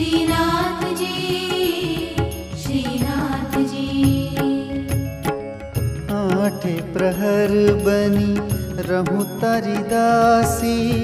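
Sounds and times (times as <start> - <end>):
percussion strokes: 0.0 - 11.0.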